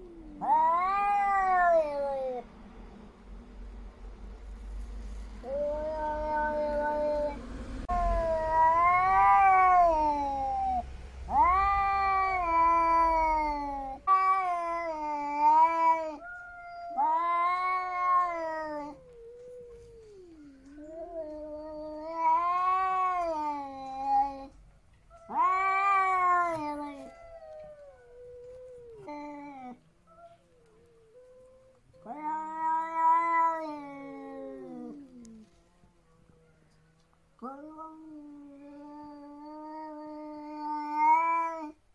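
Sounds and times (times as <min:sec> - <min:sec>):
cats yowling: 0:00.0 - 0:02.5, 0:05.4 - 0:35.6, 0:37.4 - 0:41.8.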